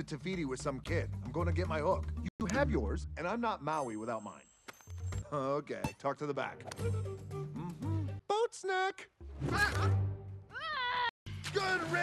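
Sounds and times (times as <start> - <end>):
film score music: 0.0 - 5.4, 6.1 - 8.4, 9.1 - 12.0.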